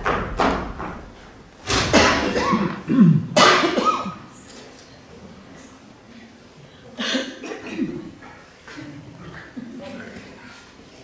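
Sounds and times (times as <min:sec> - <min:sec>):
person coughing loudly: 0:01.9 - 0:04.2.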